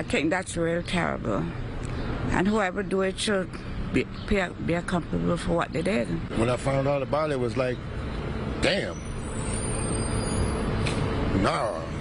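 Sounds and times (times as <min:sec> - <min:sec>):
city street traffic rumble: 0:00.0 - 0:12.0.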